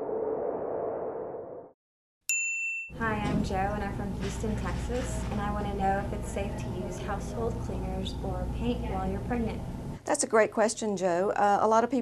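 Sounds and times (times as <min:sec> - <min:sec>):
low noisy intro sound effect: 0:00.0 - 0:01.8.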